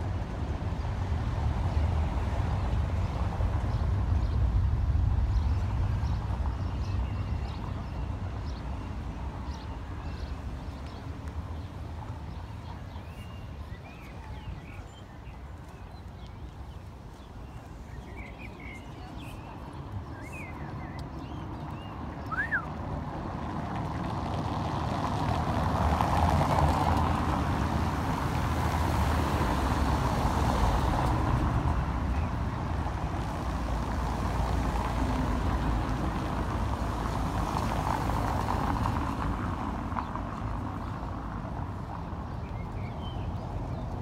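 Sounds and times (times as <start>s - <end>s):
tyres rumbling over cobblestones: 0.0s - 44.0s
cars running: 14.6s - 44.0s.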